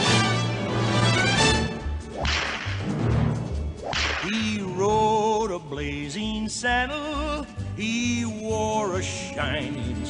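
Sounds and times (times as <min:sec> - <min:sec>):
country-western song: 0:00.0 - 0:10.0
whip cracks echoing: 0:02.1 - 0:03.0, 0:03.8 - 0:04.6.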